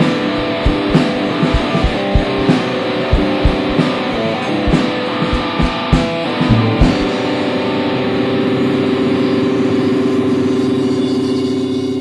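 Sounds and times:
distorted electric guitar chord: 0.0 - 11.2
cymbal wash: 0.0 - 12.0.

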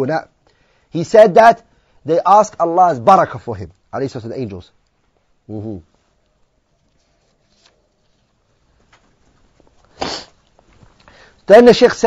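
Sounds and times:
sharp burst of breath: 0.5 - 0.9, 9.9 - 10.4.

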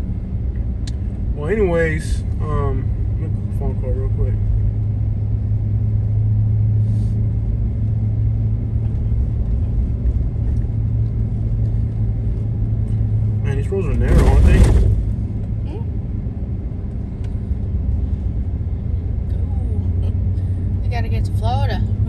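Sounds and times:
vehicle road and engine drone: 0.0 - 22.0.

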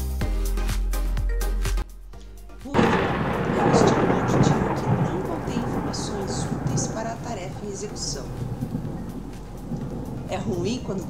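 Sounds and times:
woman speaking: 2.7 - 8.4, 10.3 - 11.0.

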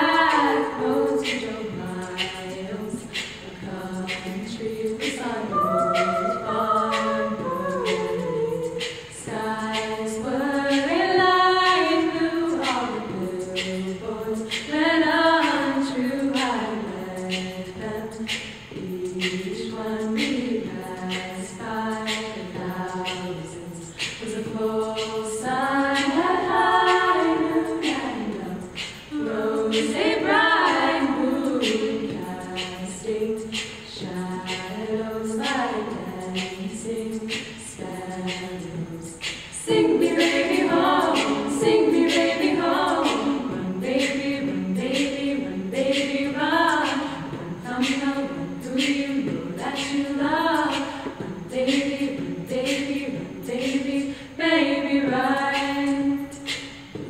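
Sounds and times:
women singing in close harmony: 0.0 - 57.0.

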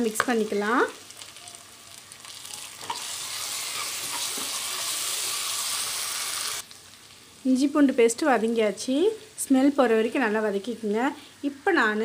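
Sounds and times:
food sizzling in hot oil: 0.0 - 12.0
metal spatula stirring: 2.5 - 5.3.

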